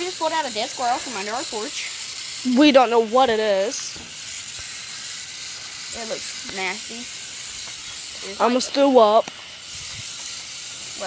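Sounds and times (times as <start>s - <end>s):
hose nozzle spraying water: 0.0s - 11.0s.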